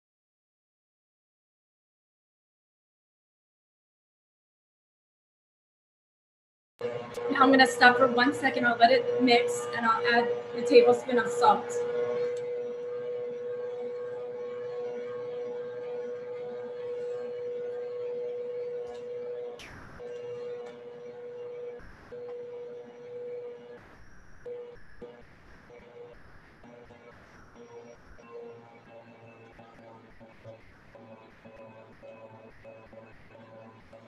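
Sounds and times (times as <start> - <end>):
dough mixer motor humming: 6.8 - 24.5.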